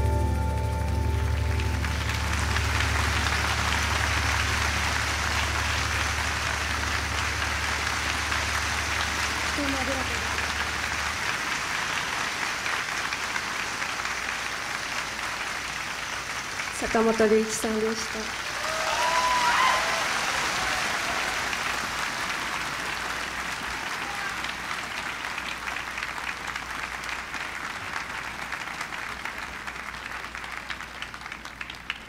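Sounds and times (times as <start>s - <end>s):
audience applauding: 0.0s - 32.0s.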